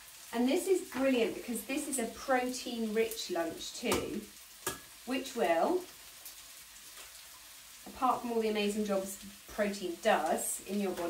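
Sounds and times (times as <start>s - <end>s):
vegetables sizzling in pan: 0.0s - 11.0s.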